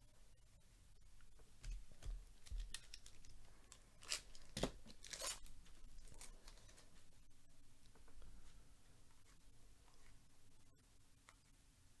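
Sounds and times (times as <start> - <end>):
card pack wrapper tearing: 4.0 - 6.3.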